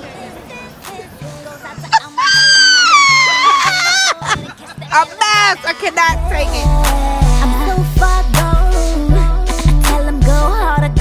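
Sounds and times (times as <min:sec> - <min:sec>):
hip-hop music with bass beat: 0:00.0 - 0:11.0
woman screaming: 0:01.9 - 0:04.4.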